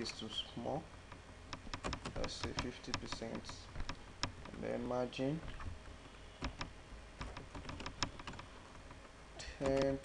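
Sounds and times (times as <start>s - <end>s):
keyboard keystroke clicks: 9.6s - 10.0s.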